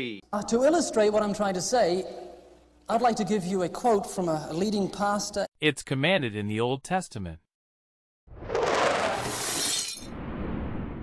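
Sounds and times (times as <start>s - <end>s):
glass shattering crash: 9.1s - 10.2s.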